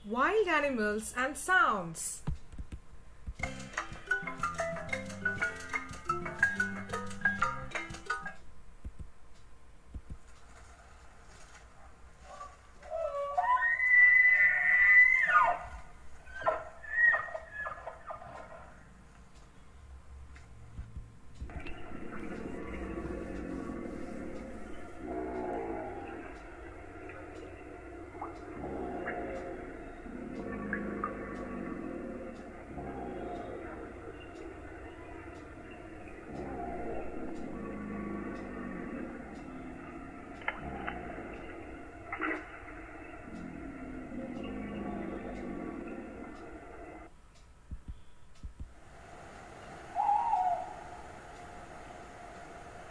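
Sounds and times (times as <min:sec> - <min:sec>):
music jingle: 0:03.4 - 0:08.4
low noisy animal call: 0:10.6 - 0:19.7, 0:21.5 - 0:47.1, 0:48.0 - 0:52.9
elk bugling: 0:12.8 - 0:18.9, 0:21.5 - 0:47.1, 0:49.5 - 0:52.9.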